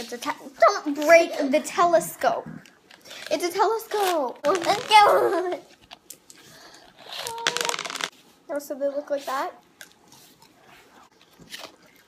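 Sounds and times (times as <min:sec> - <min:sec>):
candies rattling out of tube: 0:07.0 - 0:08.1.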